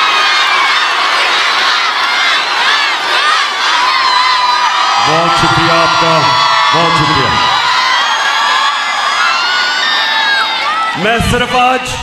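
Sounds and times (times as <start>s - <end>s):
large crowd cheering and shouting: 0.0s - 12.0s.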